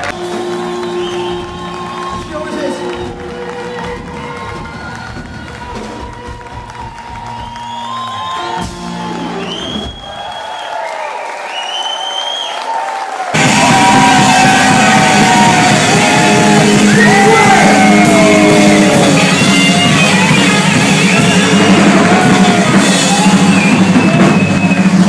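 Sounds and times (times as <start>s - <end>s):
live rock band: 0.0s - 10.0s, 13.4s - 25.0s
crowd cheering and whooping: 0.0s - 25.0s.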